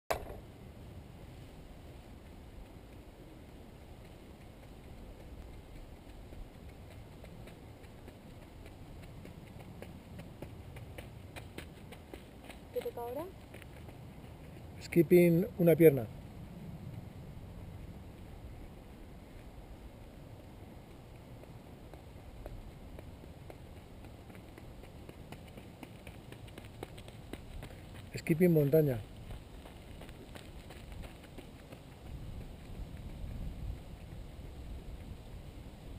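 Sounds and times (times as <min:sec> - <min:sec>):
steady low rumble: 0:00.3 - 0:35.9
footsteps on dirt path: 0:02.0 - 0:15.6, 0:18.0 - 0:35.2.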